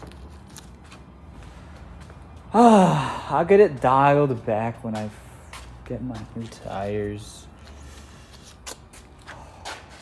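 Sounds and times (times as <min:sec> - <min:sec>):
footsteps on concrete: 0:00.0 - 0:10.0.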